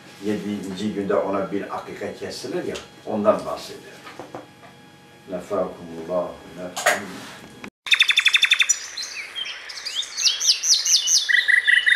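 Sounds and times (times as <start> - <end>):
high downward-sweeping bird notes: 7.9 - 11.9
small birds chirping: 7.9 - 11.9.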